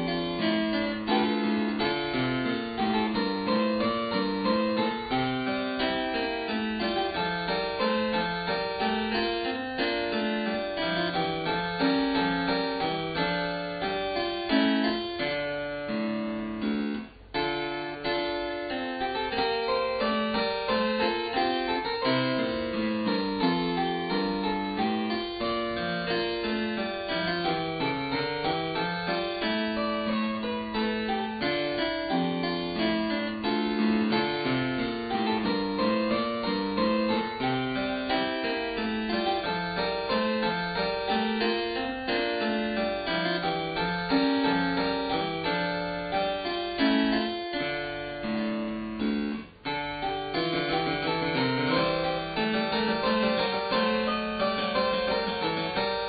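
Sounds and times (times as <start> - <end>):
harpsichord playing baroque piece: 0.0 - 56.0.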